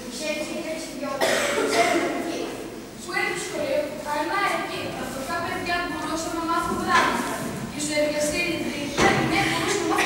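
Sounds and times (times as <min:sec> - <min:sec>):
person coughing: 0:01.2 - 0:02.5.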